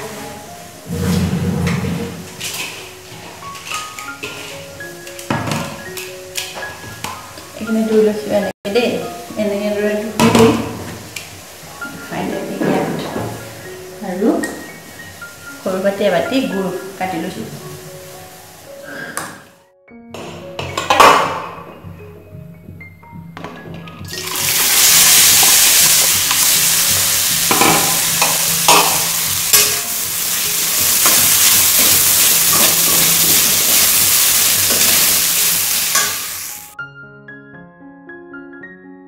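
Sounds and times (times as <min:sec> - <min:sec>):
rice sizzling in a wok: 0:00.0 - 0:01.3, 0:02.1 - 0:08.1, 0:08.9 - 0:18.9, 0:24.1 - 0:36.8
soft background music: 0:00.0 - 0:39.0
spoon scraping a pan: 0:00.9 - 0:04.8.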